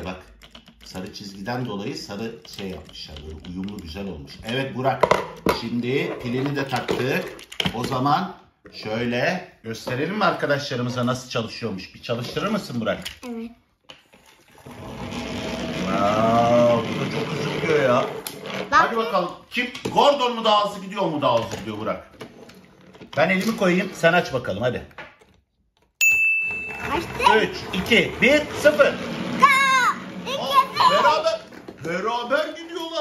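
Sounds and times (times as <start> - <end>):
voices talking: 26.8 - 33.0.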